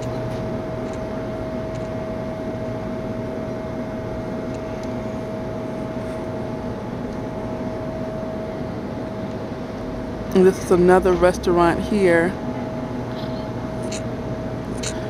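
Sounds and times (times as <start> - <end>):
constant high whine: 0.0 - 15.0
steady mechanical hum: 0.0 - 15.0.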